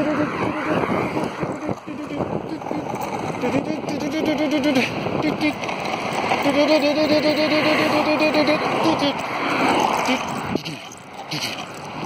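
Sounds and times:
voice repeating one syllable: 0:00.0 - 0:05.6, 0:06.4 - 0:09.2.

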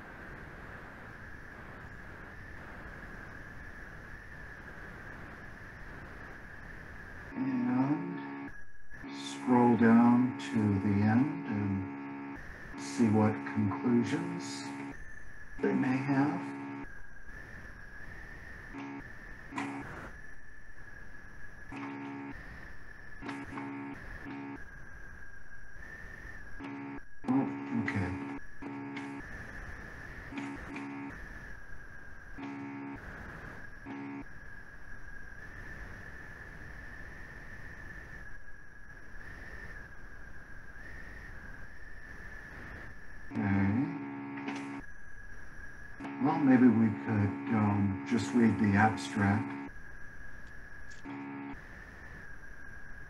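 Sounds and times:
high-pitched electronic whine: 0:00.0 - 0:53.0.

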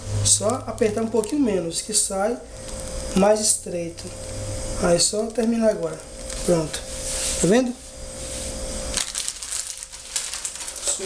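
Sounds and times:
plastic bag crinkling: 0:00.3 - 0:03.6, 0:04.8 - 0:07.8, 0:08.5 - 0:11.0.

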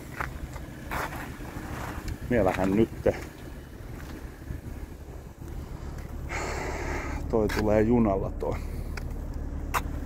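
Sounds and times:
breathy hiss: 0:06.3 - 0:07.2.

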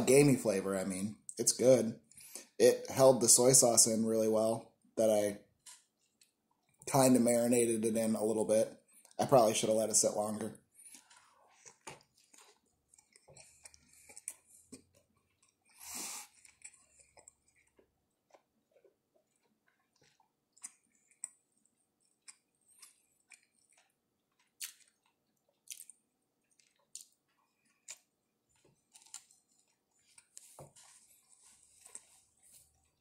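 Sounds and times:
person chewing: 0:10.7 - 0:33.0.

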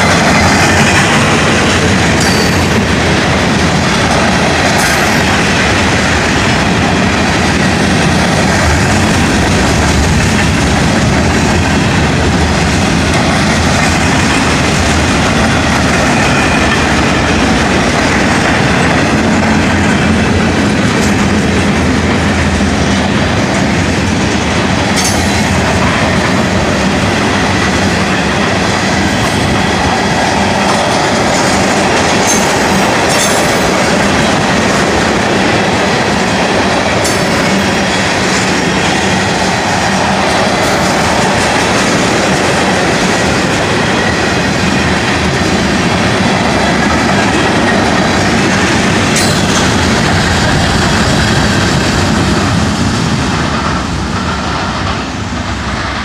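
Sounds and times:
sharp clicks of train wheels: 0:00.0 - 0:56.0
train wheels rolling on rails: 0:00.0 - 0:56.0.

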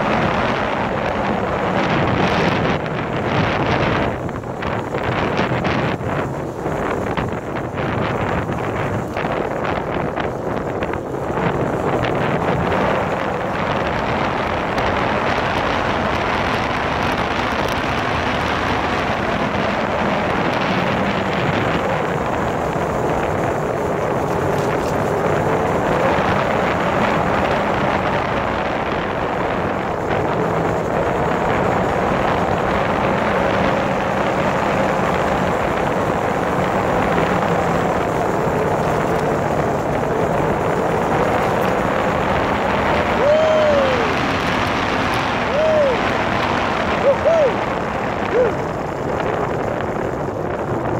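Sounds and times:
motorcycle engine running: 0:00.0 - 0:50.9
wind rushing over microphone: 0:00.0 - 0:50.9.

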